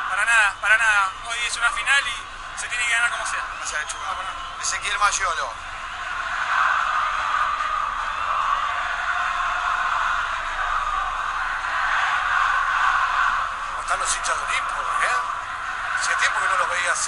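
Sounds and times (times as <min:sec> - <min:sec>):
stadium crowd voices: 0:00.0 - 0:17.0.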